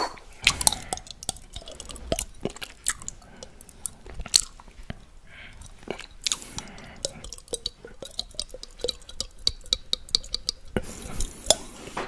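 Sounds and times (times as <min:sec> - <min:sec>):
tongue licking a glass: 0:00.3 - 0:11.8.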